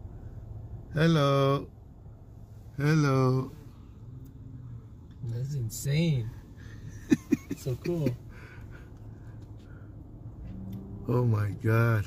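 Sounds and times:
car idling hum: 0:00.0 - 0:12.0.

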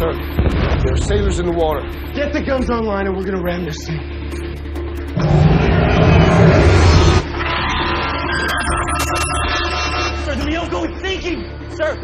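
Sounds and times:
dramatic film score: 0:04.0 - 0:12.0
deep rumbling burst: 0:05.2 - 0:07.3.

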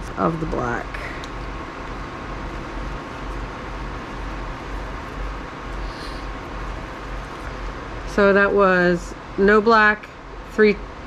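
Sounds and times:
machine whir with low hum: 0:00.0 - 0:11.0.

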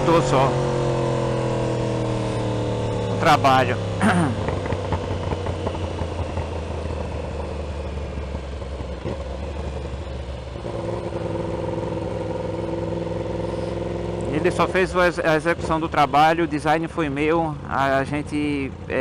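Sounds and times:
motorcycle engine droning: 0:00.0 - 0:19.0
road and wind noise: 0:00.0 - 0:19.0
second steady engine note: 0:00.0 - 0:19.0.

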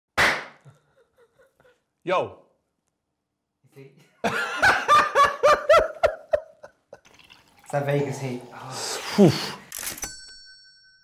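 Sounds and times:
loud smack: 0:00.2 - 0:00.6.

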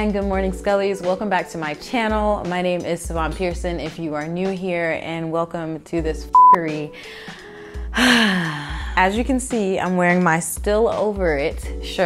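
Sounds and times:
woman sighing: 0:07.0 - 0:09.0.

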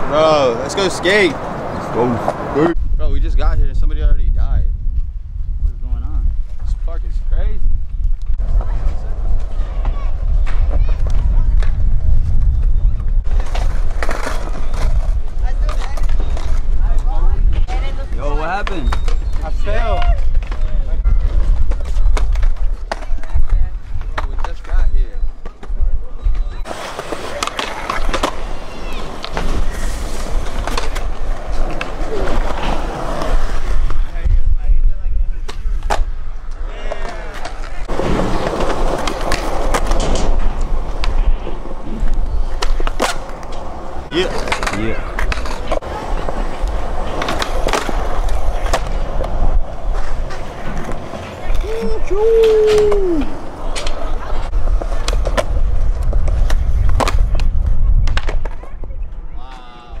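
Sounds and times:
skateboard wheels rolling on concrete: 0:00.0 - 1:00.0
skateboard tail popping and landing: 0:35.4 - 0:51.6, 0:52.4 - 0:58.9.

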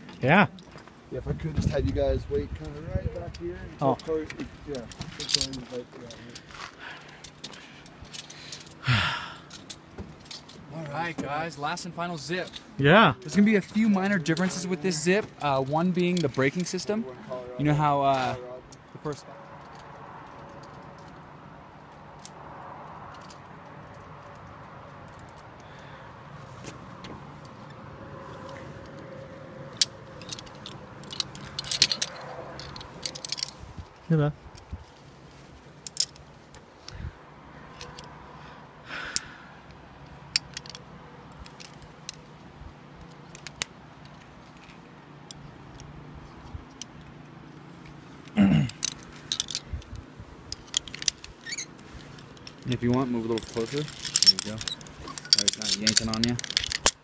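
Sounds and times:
metal carabiners clinking: 0:02.6 - 0:21.4, 0:22.0 - 0:26.0, 0:27.3 - 0:37.1, 0:37.7 - 0:57.0
person sighing: 0:08.8 - 0:09.6, 0:48.4 - 0:48.8.

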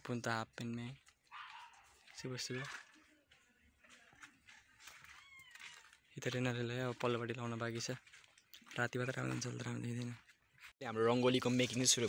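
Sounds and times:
faint cat meow: 0:05.1 - 0:05.8.

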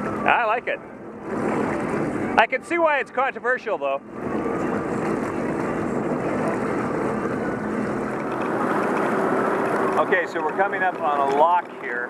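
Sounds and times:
rushing water: 0:00.0 - 0:12.0
watercraft engine drone: 0:00.0 - 0:12.0
wind: 0:00.0 - 0:12.0.

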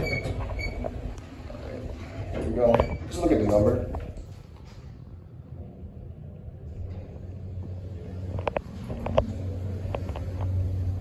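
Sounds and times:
elevator low hum: 0:00.0 - 0:11.0.

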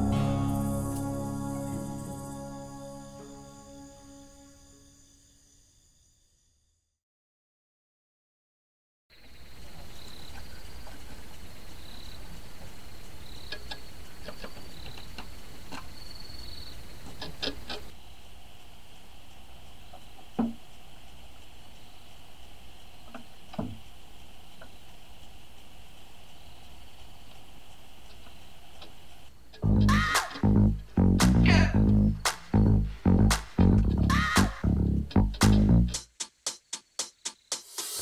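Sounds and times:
steady low hum: 0:00.0 - 0:04.5, 0:18.0 - 0:36.1.

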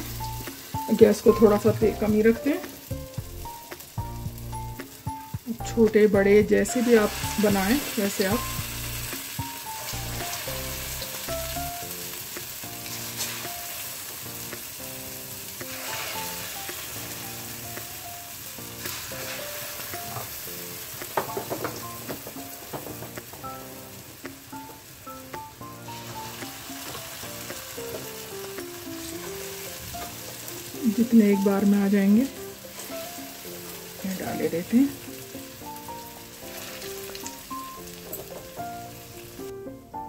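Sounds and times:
dumplings deep-frying in oil: 0:00.0 - 0:39.4
soft background music: 0:00.0 - 0:40.0.

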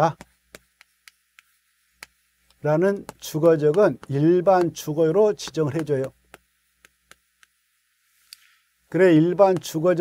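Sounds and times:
chalk tapping on blackboard: 0:00.0 - 0:07.6, 0:08.9 - 0:10.0.

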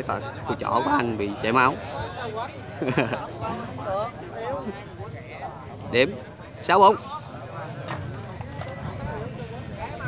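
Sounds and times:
chatter of voices: 0:00.0 - 0:10.0.

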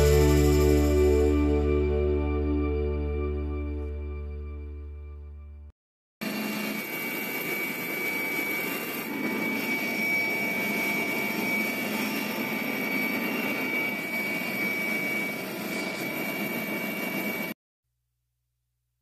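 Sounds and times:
high steady whine: 0:00.0 - 0:04.9, 0:06.2 - 0:17.5
helicopter engine noise: 0:06.2 - 0:17.6.

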